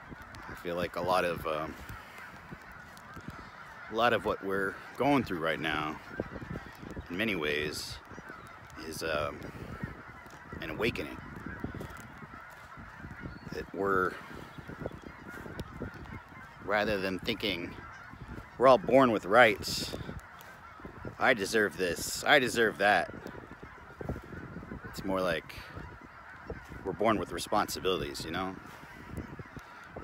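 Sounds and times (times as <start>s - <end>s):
geese honking: 0.0s - 30.0s.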